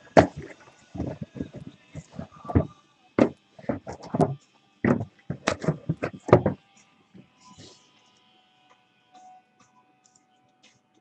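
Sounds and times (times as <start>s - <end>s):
objects knocking on a table: 0.2s - 6.6s.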